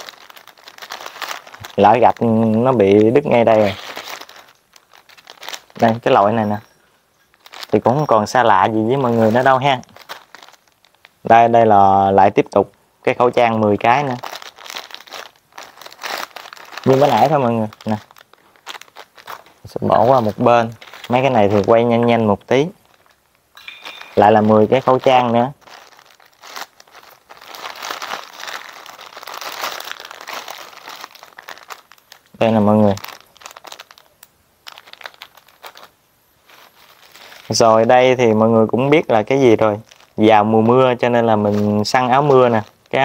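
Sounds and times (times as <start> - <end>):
plastic mailer crinkling: 0.0 - 6.7, 7.3 - 11.2, 13.8 - 38.2, 39.1 - 43.0
plastic packet rustling: 0.0 - 11.4, 13.7 - 38.2, 38.8 - 43.0.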